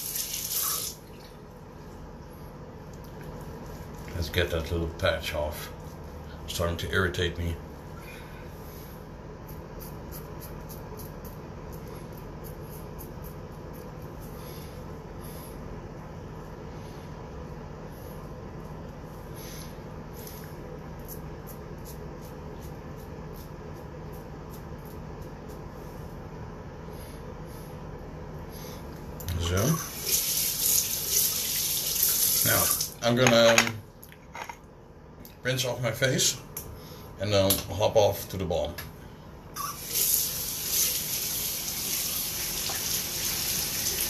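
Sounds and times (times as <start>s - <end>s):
sink tap running: 0.0s - 1.1s, 39.6s - 44.0s.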